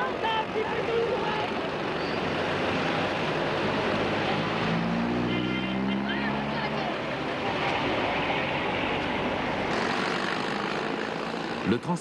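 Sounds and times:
bus and street traffic: 0:00.0 - 0:12.0.

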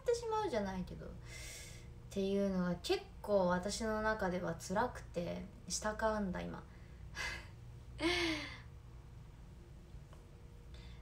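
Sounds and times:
woman breathing in: 0:01.2 - 0:02.0
woman sighing: 0:07.2 - 0:08.8.

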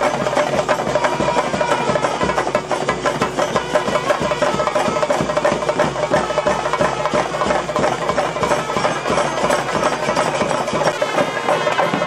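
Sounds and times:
drums in fast rhythm: 0:00.0 - 0:12.0.

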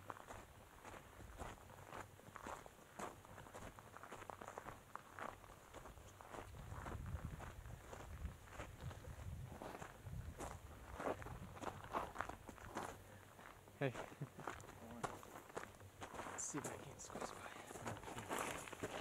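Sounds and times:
footsteps crunching on gravel: 0:00.0 - 0:19.0.

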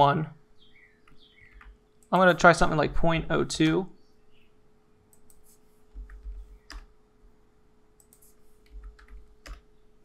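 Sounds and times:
faint steady hum: 0:00.0 - 0:10.0
mouse and keyboard clicks: 0:08.0 - 0:09.6.

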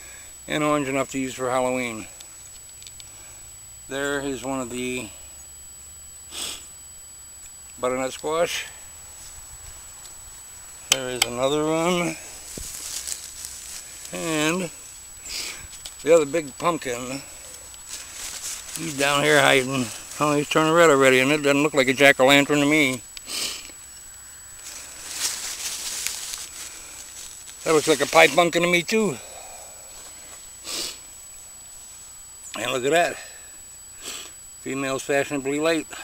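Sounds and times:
man speaking: 0:00.5 - 0:02.1, 0:03.9 - 0:05.2, 0:07.8 - 0:08.8, 0:10.9 - 0:12.3, 0:14.1 - 0:14.8, 0:16.0 - 0:17.5, 0:18.7 - 0:23.0, 0:27.6 - 0:29.5, 0:32.6 - 0:33.4, 0:34.6 - 0:36.0
sharp click: 0:10.9 - 0:11.4
leaves and vines rustling: 0:12.0 - 0:16.2, 0:17.1 - 0:20.5, 0:24.0 - 0:28.6.

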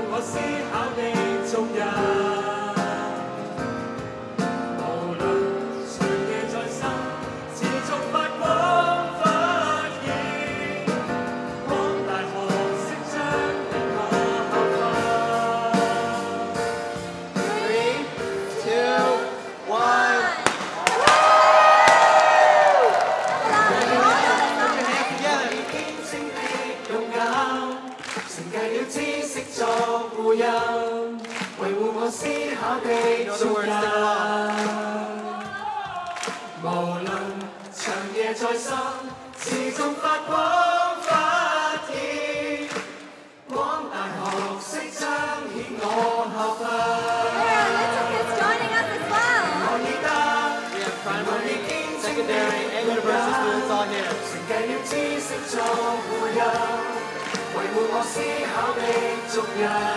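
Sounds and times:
group singing together: 0:00.0 - 0:03.8, 0:04.8 - 0:59.9
confetti cannons banging: 0:20.4 - 0:22.9.

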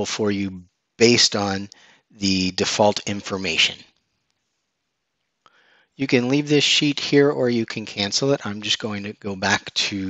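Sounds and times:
intake of breath: 0:01.7 - 0:02.2, 0:05.5 - 0:06.0.

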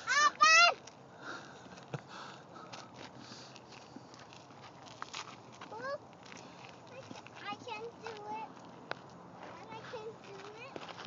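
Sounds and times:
child's high-pitched vocal sounds: 0:00.0 - 0:00.8
footsteps on dirt trail: 0:00.4 - 0:11.0.

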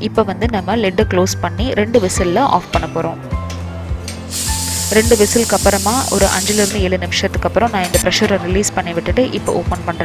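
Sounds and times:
background music: 0:00.0 - 0:10.0
pressure cooker steam hissing: 0:04.3 - 0:06.9.

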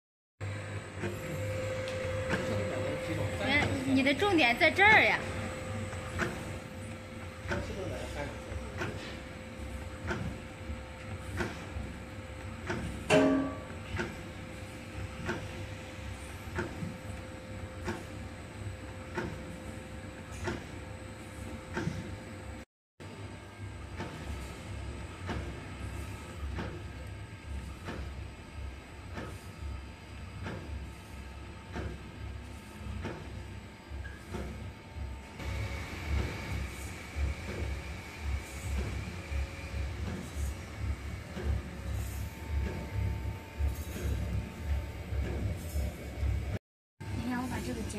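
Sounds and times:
machine motor hum: 0:00.4 - 0:47.9
loud metal clank: 0:13.1 - 0:13.7.

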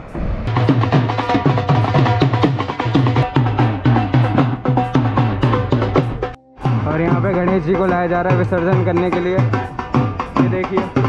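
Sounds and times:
barrel drum beating: 0:00.1 - 0:11.0.

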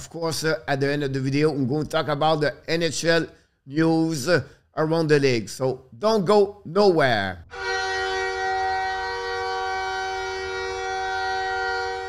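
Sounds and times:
horn sounding steady chord: 0:07.4 - 0:12.0.

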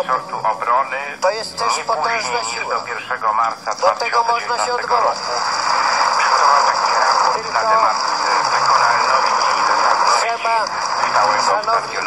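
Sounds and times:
radio reception hiss: 0:00.0 - 0:12.0.

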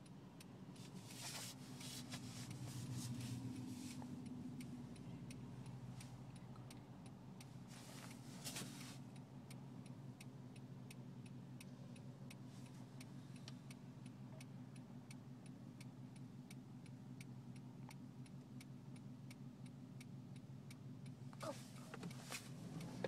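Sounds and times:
car idling hum: 0:00.0 - 0:23.0
rustle: 0:00.8 - 0:04.8, 0:07.5 - 0:09.2, 0:21.3 - 0:23.0
turn-signal indicator clicking: 0:02.1 - 0:08.2, 0:08.8 - 0:23.0.

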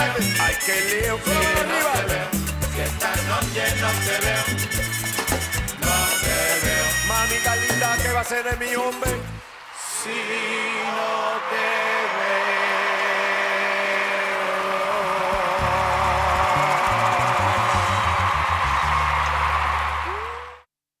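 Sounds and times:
live latin band music: 0:00.0 - 0:09.5, 0:15.6 - 0:20.6.

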